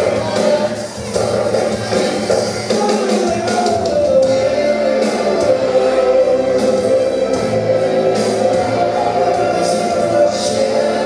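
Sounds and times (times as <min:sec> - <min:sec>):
rock band playing live: 0:00.0 - 0:11.0
choir-like vocal notes: 0:03.8 - 0:11.0.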